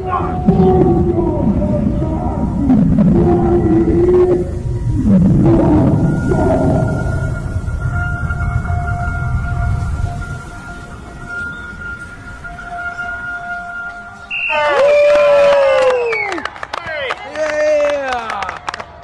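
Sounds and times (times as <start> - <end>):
voice-like cry gliding down: 0.0 - 7.4
low rumble: 0.0 - 16.1
held drone notes: 0.0 - 16.4.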